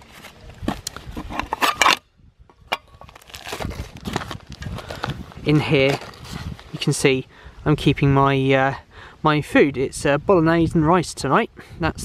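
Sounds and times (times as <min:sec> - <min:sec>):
food packets crinkling: 0:03.0 - 0:06.8
nylon sack rustling: 0:03.1 - 0:07.0.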